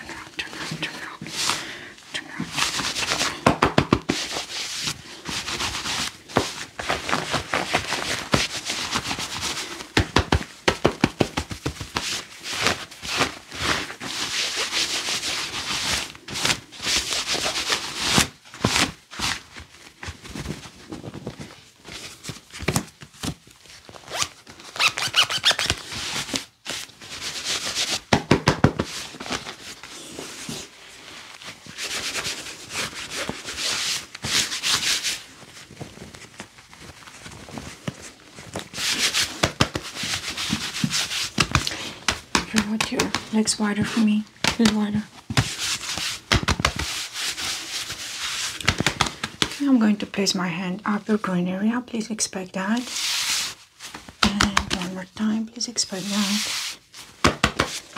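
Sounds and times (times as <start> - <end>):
gloved hands swishing over fabric: 2.4 - 20.9, 24.1 - 49.6, 52.6 - 57.9
sharp pats on clothing: 2.8 - 4.5, 10.0 - 12.2, 28.0 - 29.0, 38.8 - 43.3, 48.5 - 49.6, 57.2 - 57.8.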